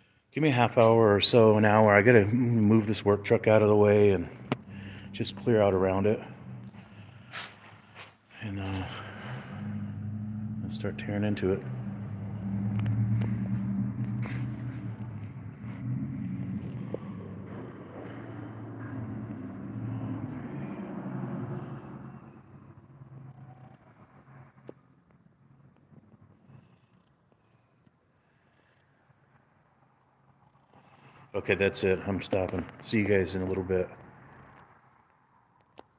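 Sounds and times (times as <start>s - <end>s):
vehicle engine running: 1.2s - 27.0s.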